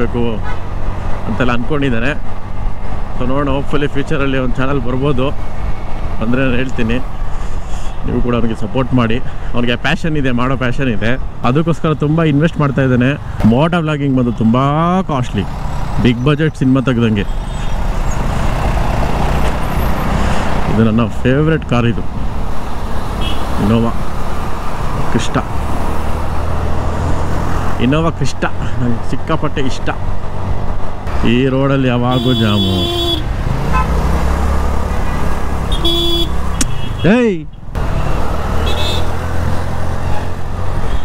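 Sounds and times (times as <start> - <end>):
road and wind noise: 0.0 - 41.0.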